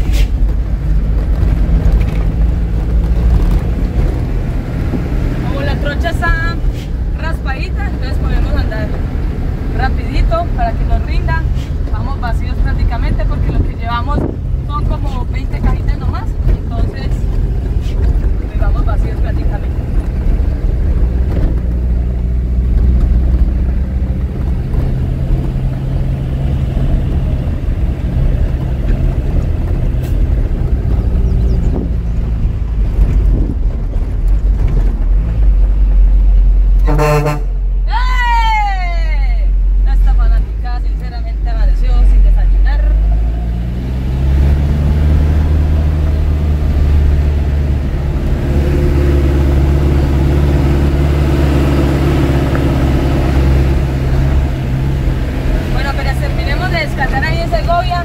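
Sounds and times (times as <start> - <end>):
truck engine running: 0.0 - 37.9, 39.4 - 58.0
short horn toot: 36.8 - 37.6.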